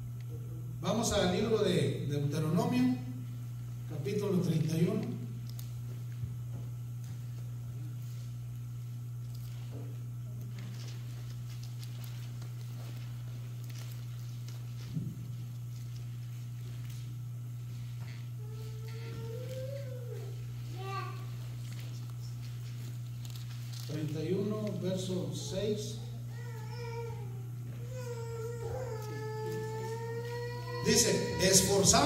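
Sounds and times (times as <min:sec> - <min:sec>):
pages rustling: 0:10.4 - 0:18.0, 0:21.5 - 0:24.8.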